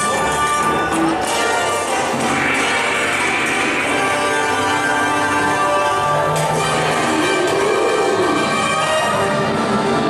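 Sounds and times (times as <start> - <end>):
layered sustained music: 0.0 - 10.0.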